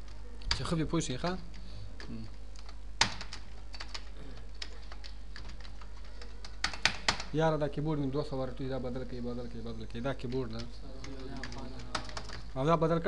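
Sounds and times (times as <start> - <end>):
keyboard typing: 0.0 - 7.4, 9.4 - 12.7.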